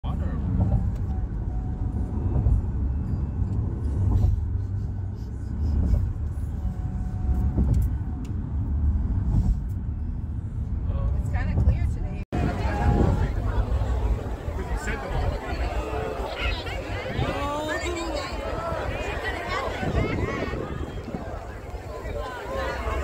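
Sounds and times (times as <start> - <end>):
car road noise rumble: 0.0 - 23.0.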